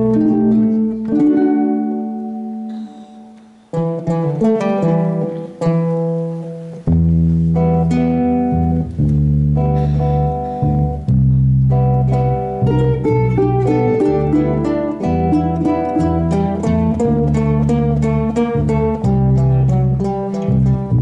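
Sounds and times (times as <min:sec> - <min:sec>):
bass line: 0:00.0 - 0:05.4, 0:06.3 - 0:21.0
ukulele ensemble strumming chords: 0:00.0 - 0:21.0.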